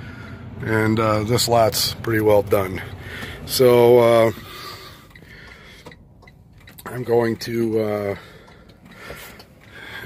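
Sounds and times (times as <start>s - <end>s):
low rumble in truck cab: 0.0s - 10.0s.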